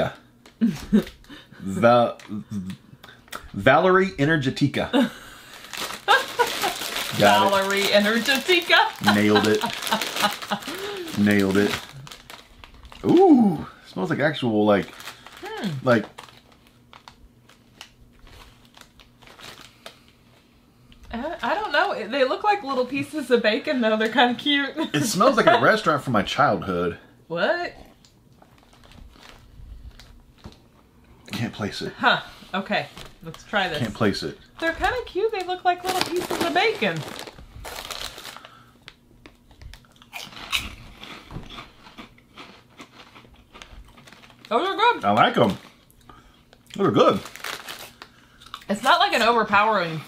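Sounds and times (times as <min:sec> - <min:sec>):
plastic bag crinkling: 0:00.0 - 0:01.4, 0:05.0 - 0:13.2, 0:14.0 - 0:20.2, 0:28.3 - 0:30.7, 0:32.8 - 0:49.6
crunchy snack being chewed: 0:39.2 - 0:44.5, 0:45.4 - 0:48.7.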